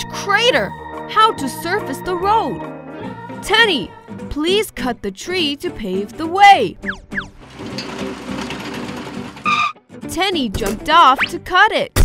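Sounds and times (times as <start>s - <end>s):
background music: 0.0s - 12.0s
cartoon excavator engine running: 7.3s - 9.8s.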